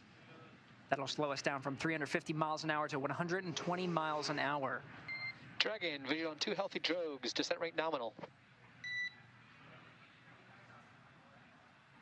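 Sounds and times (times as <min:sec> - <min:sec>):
faint radio hiss: 0:00.0 - 0:12.0.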